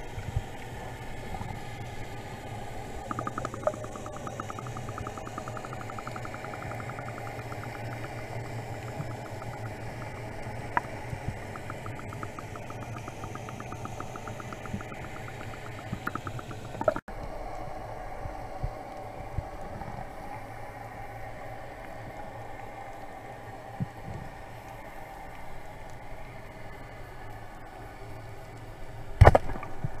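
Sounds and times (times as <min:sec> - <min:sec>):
steady hum: 0:00.0 - 0:23.9
muffled underwater rumble and hiss: 0:00.0 - 0:30.0
fast even ticking: 0:03.0 - 0:17.1.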